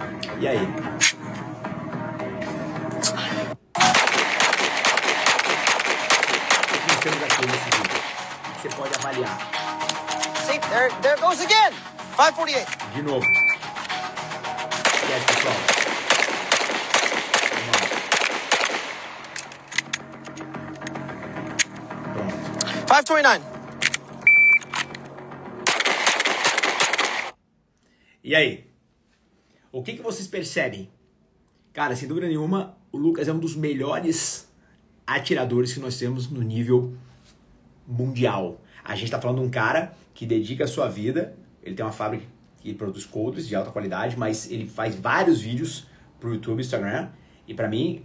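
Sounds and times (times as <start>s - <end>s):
music playing: 0.0s - 18.1s, 19.0s - 25.7s
man's voice: 0.2s - 1.0s, 6.7s - 13.5s, 14.9s - 15.8s
pistol shots: 3.8s - 8.3s, 14.8s - 20.0s, 25.6s - 27.4s.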